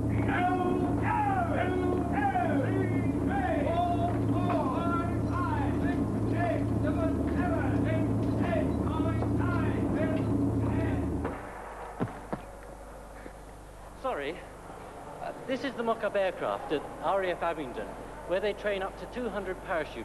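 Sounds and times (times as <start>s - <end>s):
men shouting indistinctly: 0.0s - 11.2s
low mechanical drone: 0.0s - 14.1s.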